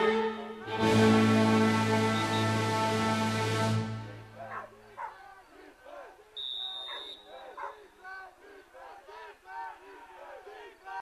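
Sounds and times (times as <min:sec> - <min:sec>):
referee's whistle blast: 0:02.1 - 0:02.8, 0:06.4 - 0:07.6
voices shouting and calling: 0:04.0 - 0:11.0.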